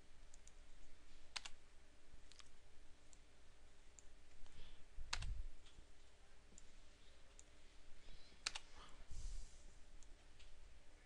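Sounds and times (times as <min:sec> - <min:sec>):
room hiss: 0:00.0 - 0:11.0
computer mouse clicks: 0:00.3 - 0:01.6, 0:02.2 - 0:03.2, 0:03.9 - 0:05.8, 0:08.4 - 0:08.7.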